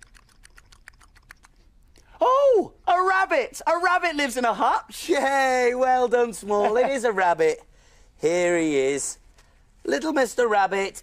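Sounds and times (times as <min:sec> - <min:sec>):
man making mouth clicking sounds: 0:00.0 - 0:02.2.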